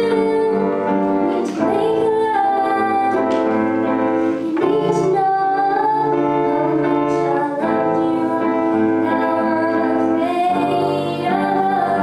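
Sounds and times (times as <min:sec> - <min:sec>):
upright piano: 0:00.0 - 0:12.0
woman singing: 0:00.0 - 0:12.0.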